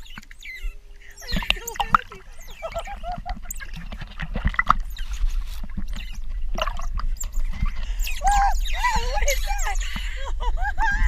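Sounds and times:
baby otters squeaking: 0.0s - 3.8s, 5.9s - 10.0s
water splashing and sloshing: 0.0s - 11.0s.

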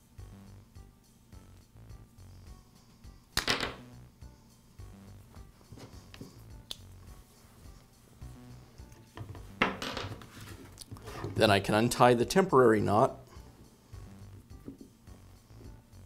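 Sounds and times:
soft background music: 0.0s - 16.0s.

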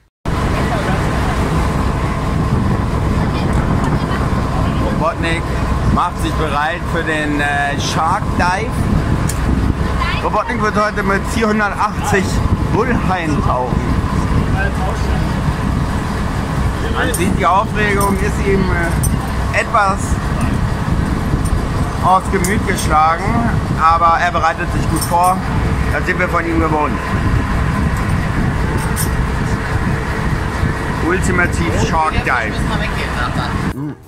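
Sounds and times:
boat engine droning: 0.0s - 34.0s.

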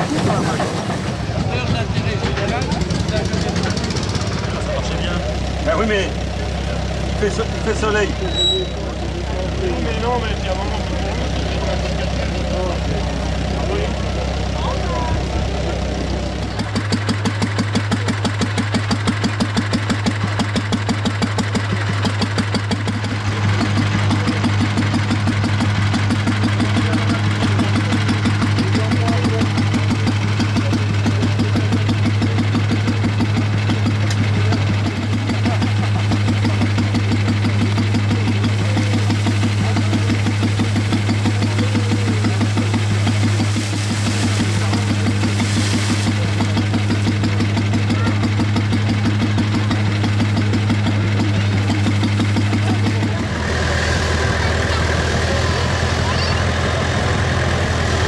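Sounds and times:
stationary farm engine running: 0.0s - 58.0s.

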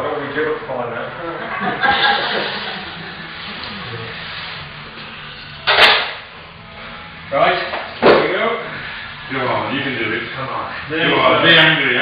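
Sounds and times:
faint voices: 2.2s - 5.6s.

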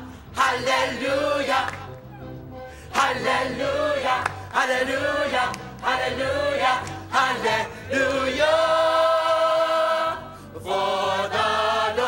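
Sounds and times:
choir singing: 0.0s - 1.9s, 2.9s - 12.0s.

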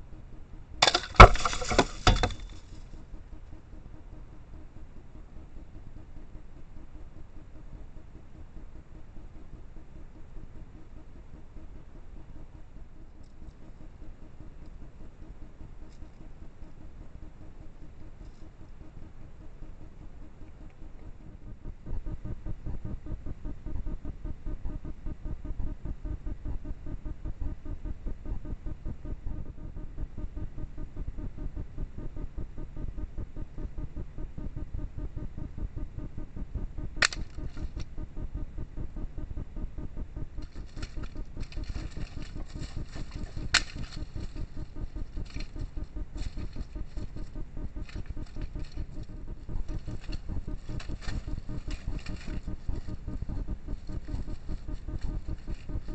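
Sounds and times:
low rumbling background noise: 0.0s - 55.9s
rustling in dry leaves: 40.4s - 55.9s.

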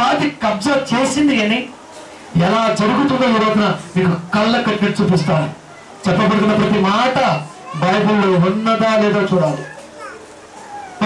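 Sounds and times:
man speaking into a microphone: 0.0s - 1.7s, 2.3s - 9.7s.

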